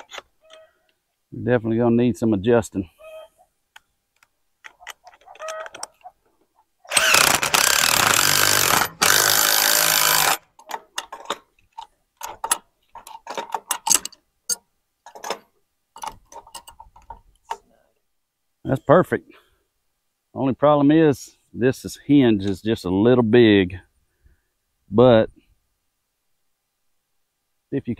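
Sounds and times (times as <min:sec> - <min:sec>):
cordless drill under load: 0:06.9 - 0:10.4.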